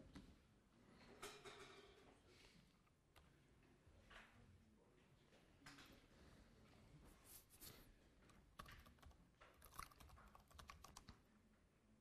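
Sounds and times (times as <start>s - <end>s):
typing on computer keyboard: 8.3s - 11.3s.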